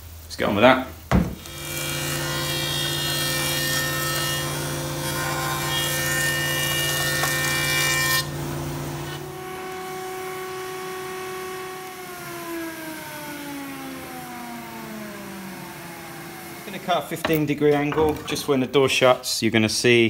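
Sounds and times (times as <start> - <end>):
woodworking cutter cutting wood: 1.4 - 18.0
motor winding down: 6.6 - 17.2.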